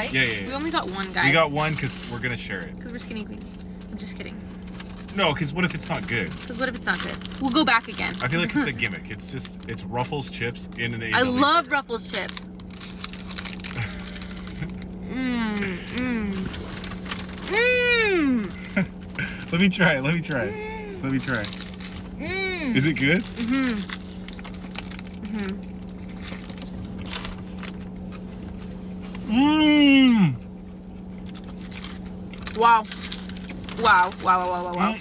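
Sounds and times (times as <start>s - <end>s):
chips crunching: 0.0s - 3.4s, 4.4s - 18.0s, 18.6s - 22.2s, 22.8s - 28.7s, 31.0s - 35.0s
low car cabin hum: 0.0s - 35.0s
crunching bite into burger: 12.4s - 17.5s
person humming approval: 15.1s - 16.4s.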